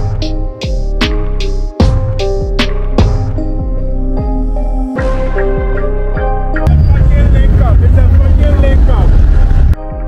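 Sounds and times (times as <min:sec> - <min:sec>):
engine and wind rumble: 0:06.7 - 0:09.8.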